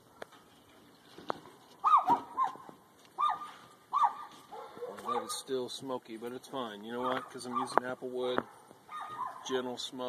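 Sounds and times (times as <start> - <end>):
dog yipping: 1.8 - 5.4, 7.0 - 7.8, 8.9 - 9.5.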